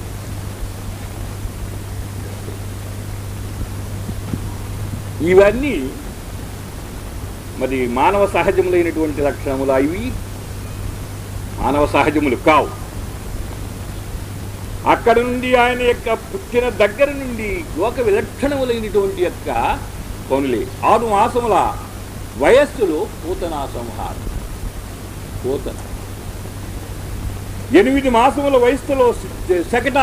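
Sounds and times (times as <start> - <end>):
low hum: 0.0 - 29.8
recording hiss: 0.0 - 30.0
man speaking: 5.2 - 6.1, 7.6 - 10.2, 11.6 - 12.9, 14.8 - 24.2, 25.4 - 25.8, 27.7 - 30.0.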